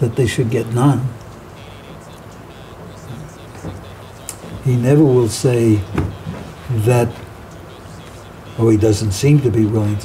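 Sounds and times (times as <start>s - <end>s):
faint small noises: 0.0s - 10.0s.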